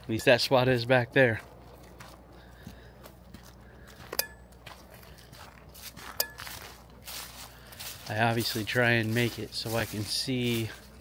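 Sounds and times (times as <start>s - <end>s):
footsteps on forest trail: 0.0s - 11.0s
sharp clicks with ringing: 4.1s - 4.6s, 6.2s - 6.6s.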